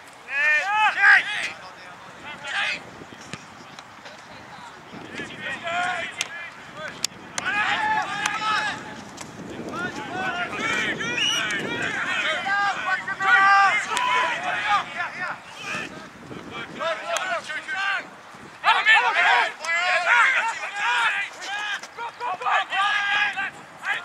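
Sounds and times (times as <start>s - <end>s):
people shouting and calling: 0.3s - 2.8s, 4.6s - 24.0s
wind noise on microphone: 1.4s - 18.8s.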